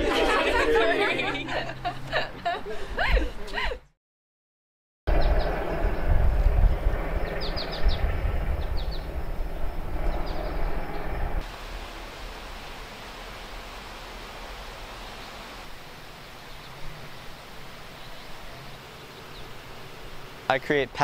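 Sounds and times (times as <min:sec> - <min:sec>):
birds chirping: 0:05.1 - 0:11.3, 0:12.5 - 0:21.0
low rumble: 0:05.1 - 0:12.0
quiet outdoor background: 0:05.1 - 0:21.0.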